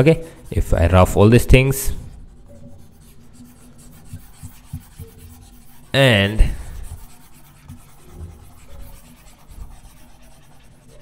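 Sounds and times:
stylus scrubbing on tablet: 0:00.0 - 0:11.0.

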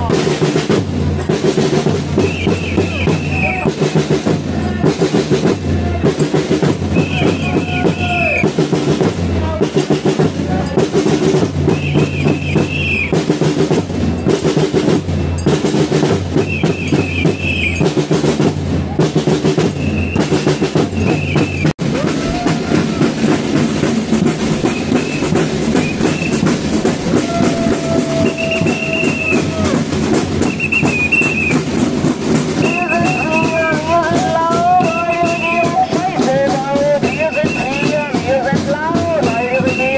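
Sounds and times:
drums marching rhythm: 0:00.0 - 0:39.9
walking crowd: 0:00.0 - 0:39.9
voices calling out: 0:02.0 - 0:13.2, 0:16.3 - 0:39.9.

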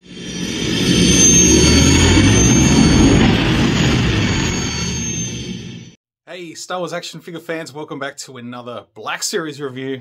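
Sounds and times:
thin high whine: 0:00.0 - 0:06.0
spaceship engine rumble: 0:00.1 - 0:06.0.

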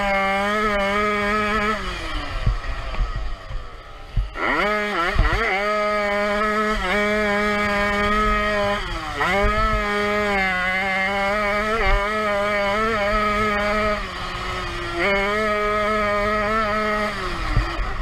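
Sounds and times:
two-stroke engine revving: 0:00.0 - 0:18.0.

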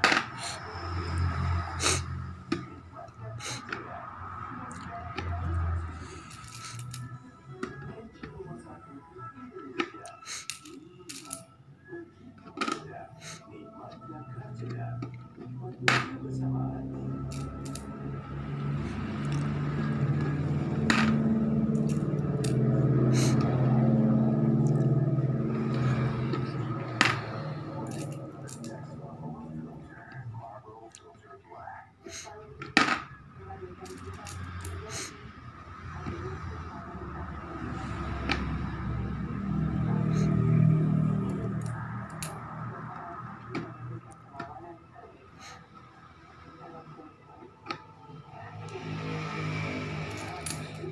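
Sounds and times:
coins clinking into coin bank: 0:06.1 - 0:07.2, 0:10.2 - 0:11.5, 0:17.3 - 0:17.9, 0:20.9 - 0:21.2, 0:21.8 - 0:23.4, 0:27.0 - 0:28.8, 0:33.8 - 0:35.0, 0:41.4 - 0:42.4, 0:50.1 - 0:50.9.

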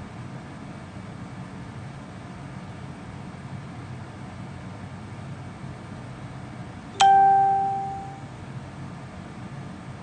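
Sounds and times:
chime: 0:07.0 - 0:08.2.

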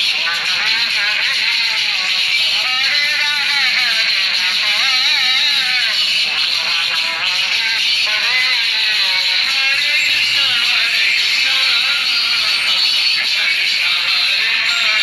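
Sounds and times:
person singing a chant: 0:00.2 - 0:15.0.

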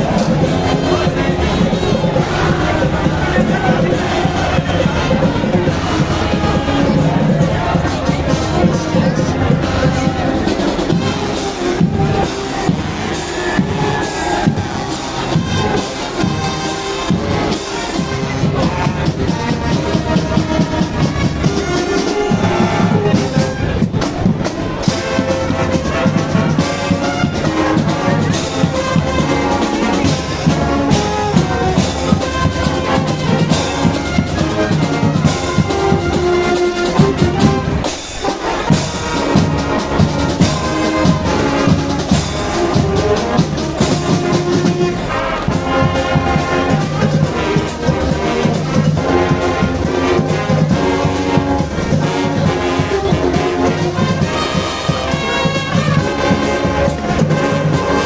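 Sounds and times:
brass section playing: 0:00.0 - 0:58.0
marching drums: 0:00.0 - 0:58.0.

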